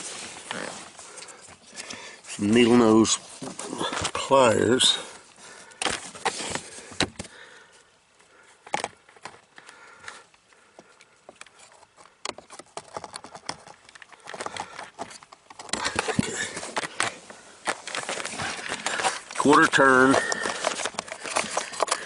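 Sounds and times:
rustling: 0:00.0 - 0:22.0
pliers clicking and scraping plastic: 0:11.0 - 0:22.0.

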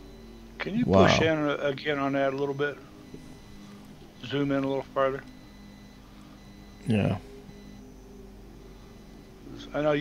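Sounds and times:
low steady hum: 0:00.0 - 0:10.0
man saying yeah: 0:00.8 - 0:01.4.

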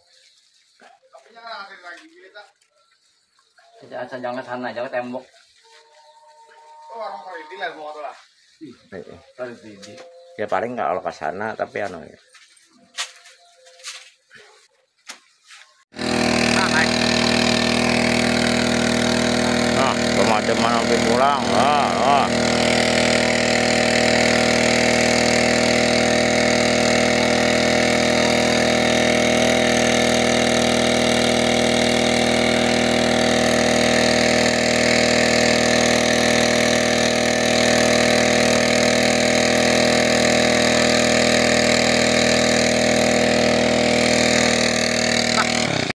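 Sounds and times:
water pump engine running: 0:15.9 - 0:45.9.

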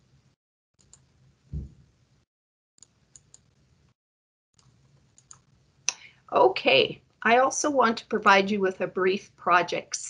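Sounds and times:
faint irregular clicks: 0:02.8 - 0:03.6, 0:04.6 - 0:06.1.

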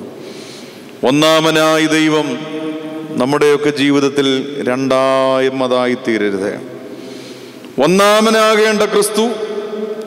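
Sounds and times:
man chanting: 0:01.0 - 0:06.7, 0:07.8 - 0:10.0.

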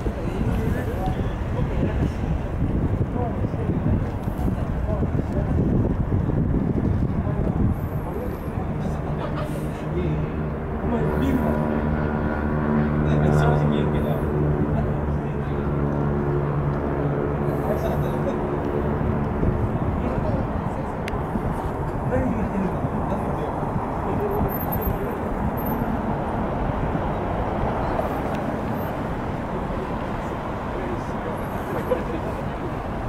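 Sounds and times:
passing traffic: 0:00.0 - 0:33.0
vehicle engine humming: 0:00.0 - 0:33.0.

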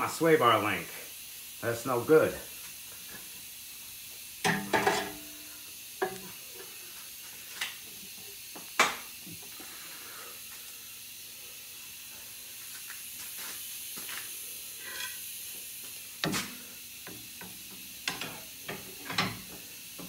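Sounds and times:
background hiss: 0:00.0 - 0:20.0.

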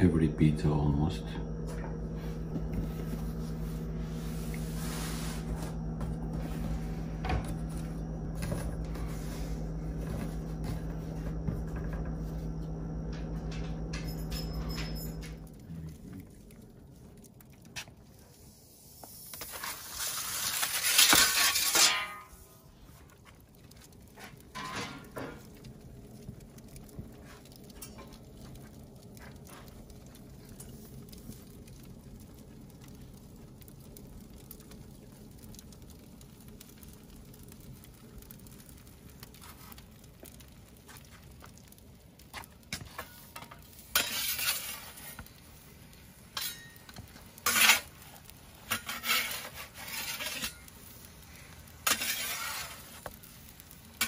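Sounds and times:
wood fire crackling: 0:00.0 - 0:54.0
metal peel scraping stone floor: 0:19.3 - 0:22.6, 0:41.0 - 0:45.4, 0:46.3 - 0:50.9, 0:51.8 - 0:54.0.

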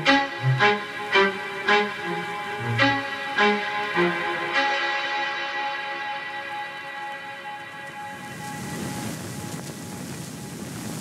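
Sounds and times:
music track held notes: 0:00.0 - 0:10.2.

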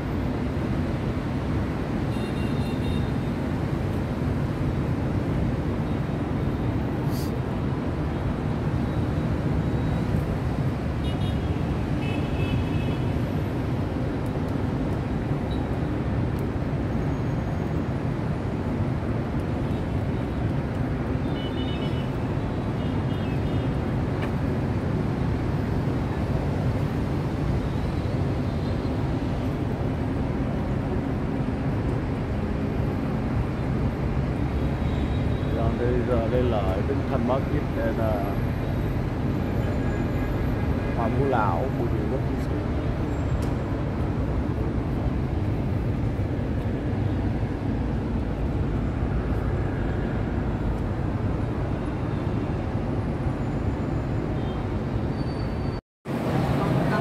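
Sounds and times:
city street traffic rumble: 0:00.0 - 0:57.0.

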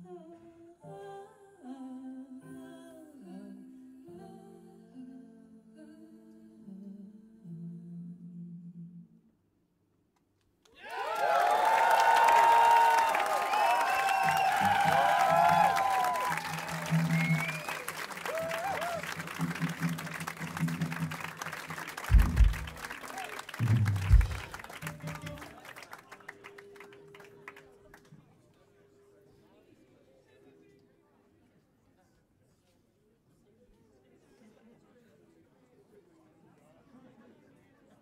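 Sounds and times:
crowd clapping and cheering: 0:10.7 - 0:28.1
low bass notes: 0:22.1 - 0:22.8, 0:23.6 - 0:25.4
heavy low thumps: 0:22.1 - 0:22.9, 0:23.6 - 0:25.4.

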